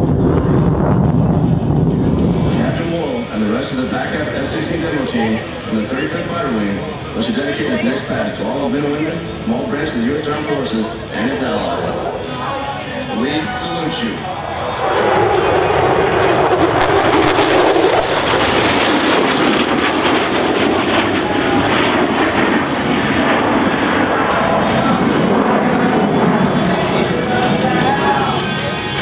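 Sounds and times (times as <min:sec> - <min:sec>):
jet engine roaring: 0:00.0 - 0:29.0.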